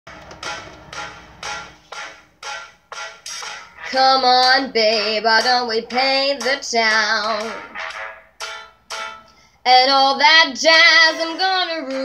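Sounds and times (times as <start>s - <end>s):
piano chords: 0.1s - 12.0s
girl singing: 3.9s - 7.7s, 9.7s - 12.0s.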